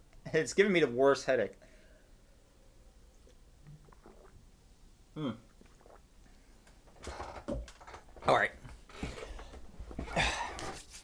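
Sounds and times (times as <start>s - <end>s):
sipping and swallowing: 3.2s - 6.9s.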